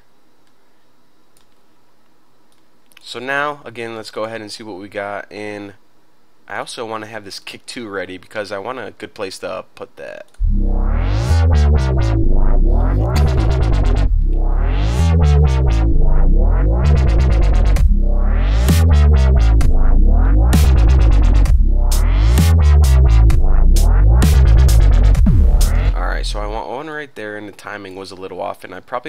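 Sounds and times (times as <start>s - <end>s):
dubstep electronic track: 10.4s - 26.6s.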